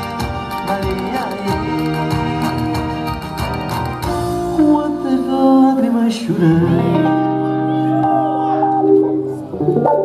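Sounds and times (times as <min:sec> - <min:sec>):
electric guitar gliding notes: 0:00.0 - 0:10.0
keyboard: 0:00.0 - 0:10.0
live band playing a popular song: 0:00.0 - 0:10.0.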